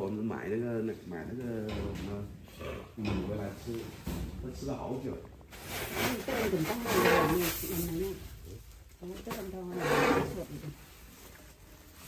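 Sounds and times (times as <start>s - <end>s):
rice grains rustling in metal bin: 5.5s - 8.2s.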